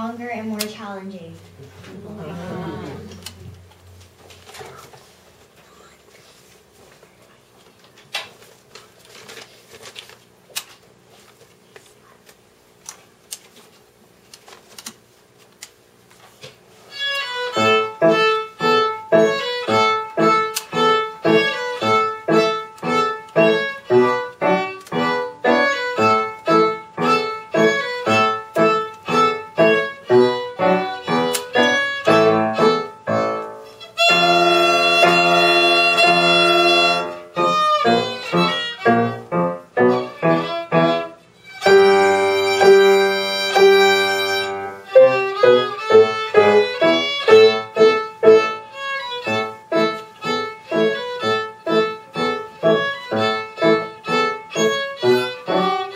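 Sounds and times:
solo violin: 0:16.9 - 0:55.9
piano accompaniment: 0:17.3 - 0:55.9.

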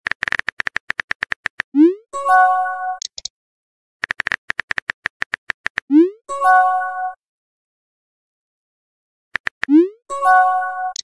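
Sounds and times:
quick screen taps: 0:00.0 - 0:01.8, 0:04.0 - 0:06.0, 0:09.4 - 0:09.8.

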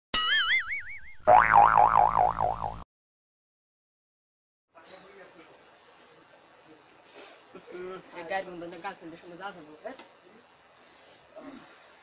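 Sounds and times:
cartoon boing sound effect: 0:00.2 - 0:02.8.

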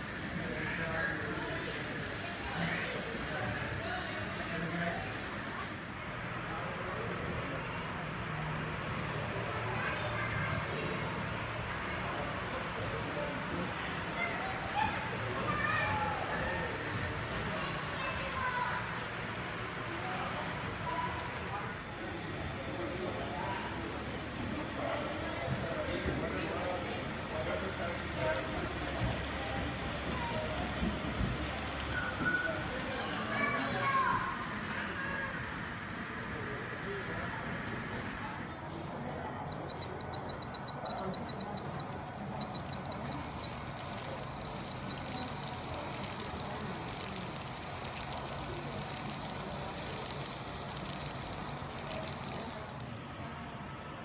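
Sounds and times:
background chatter of people: 0:00.0 - 0:54.0
steady low hum: 0:26.9 - 0:54.0.

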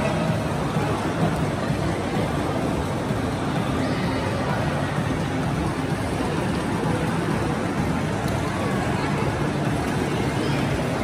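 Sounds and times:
reverberant crowd noise: 0:00.0 - 0:11.0.

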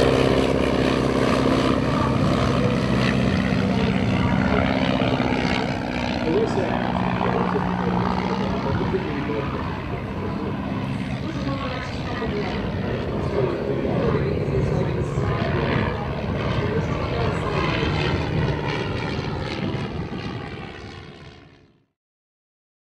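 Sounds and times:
biplane propeller engine running: 0:00.0 - 0:21.9.

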